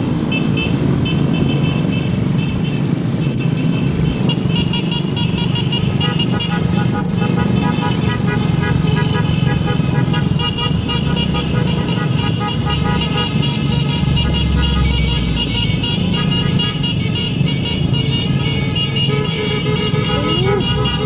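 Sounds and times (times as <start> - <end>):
motorcycle engines running: 0.0 - 21.0
horns beeping: 0.2 - 21.0.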